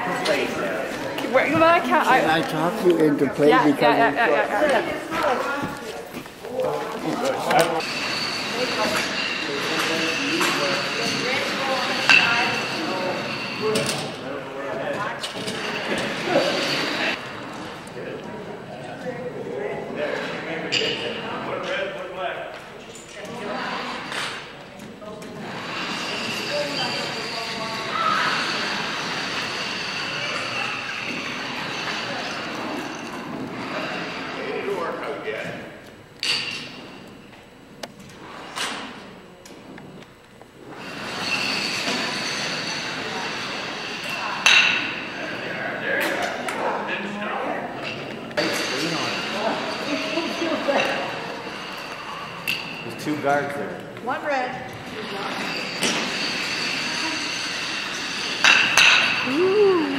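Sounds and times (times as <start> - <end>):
indistinct chatter: 0.0 - 59.9.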